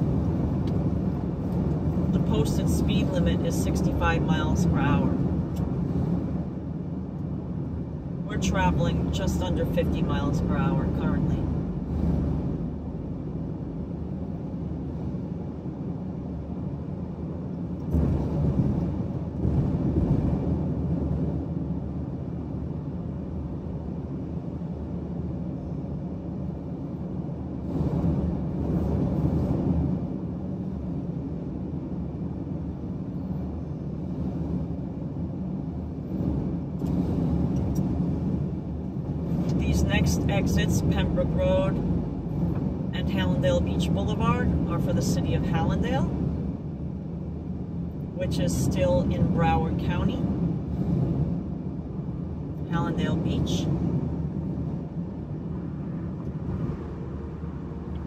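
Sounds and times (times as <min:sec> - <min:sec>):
road and tyre noise in car cabin: 0:00.0 - 0:58.0.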